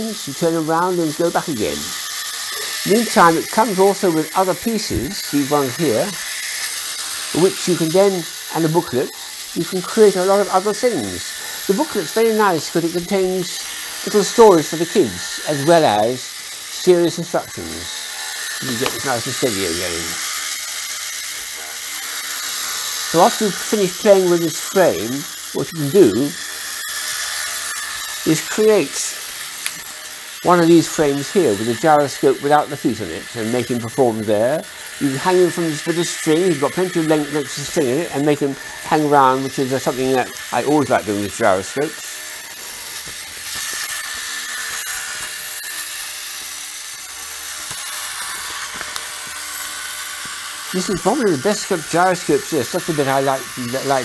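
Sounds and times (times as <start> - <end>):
toy motor high-pitched whir: 0.0 - 54.0.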